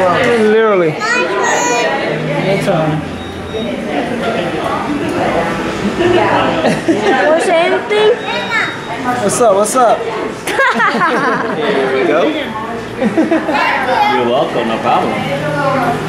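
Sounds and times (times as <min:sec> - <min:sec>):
children chattering: 0:00.0 - 0:16.0.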